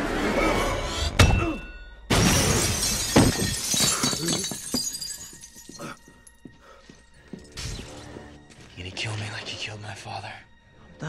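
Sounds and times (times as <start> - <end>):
film score: 0.0 - 2.6, 5.4 - 11.0
falling glass shards: 2.1 - 5.8
glass shattering: 2.1 - 6.3.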